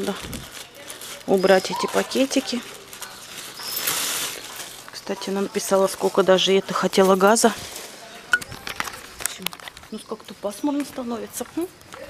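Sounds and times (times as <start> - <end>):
plastic bag rustling: 0.0 - 9.9.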